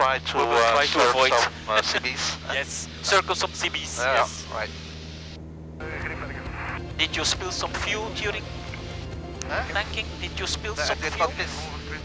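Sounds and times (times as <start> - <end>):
aircraft piston engine droning: 0.0 - 12.0.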